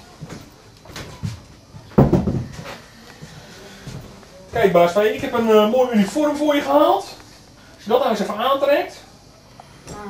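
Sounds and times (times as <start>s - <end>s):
door shutting with knock: 2.0s - 2.6s.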